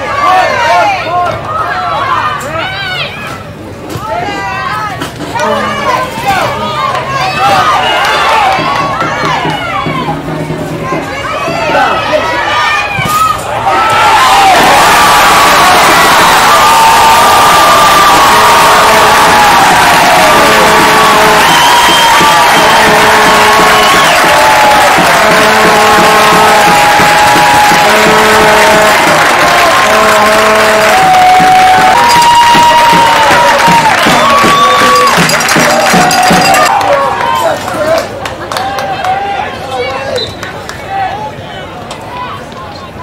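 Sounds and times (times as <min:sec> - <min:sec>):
crowd cheering and yelling: 0:00.0 - 0:43.0.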